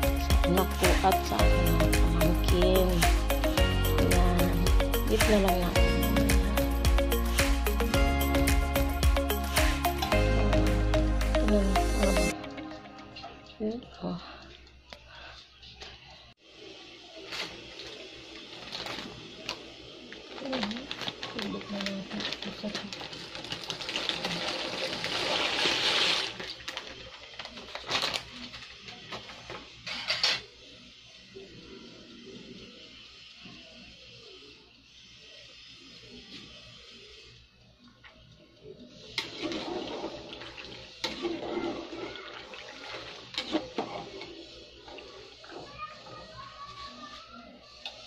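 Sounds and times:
pasta pouring into water: 17.7 - 28.5, 39.2 - 45.8
plastic packet crinkling: 18.4 - 19.6, 20.2 - 28.8.

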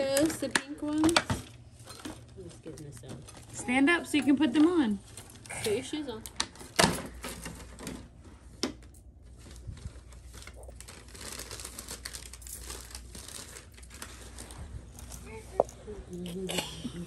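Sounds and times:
tissue paper crinkling: 9.2 - 16.1.

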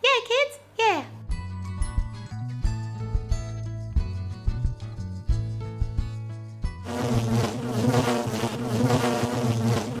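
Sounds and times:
loud buzzing sound effect: 6.8 - 10.0
outro music beats: 6.8 - 10.0.

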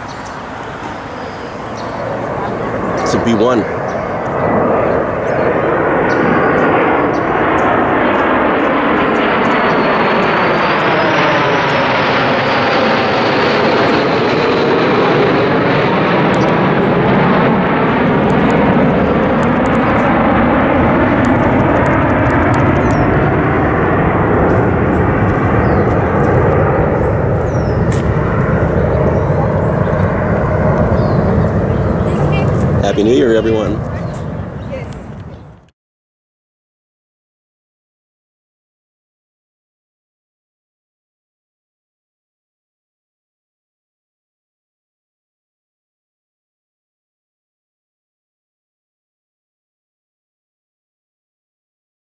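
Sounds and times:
jet bombers roaring overhead: 0.0 - 35.7.

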